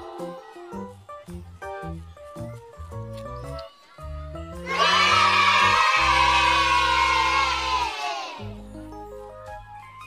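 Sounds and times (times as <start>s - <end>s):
children's song backing music: 0.0s - 10.0s.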